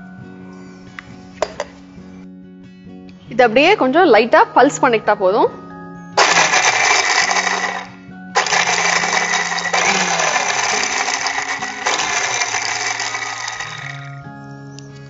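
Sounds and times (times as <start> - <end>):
mixer grinder running: 6.2 - 14.2.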